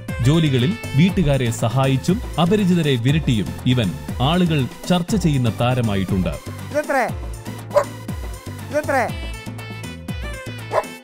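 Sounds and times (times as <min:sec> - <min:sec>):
background music: 0:00.0 - 0:11.0
large dog barking: 0:07.7 - 0:08.0, 0:10.7 - 0:11.0.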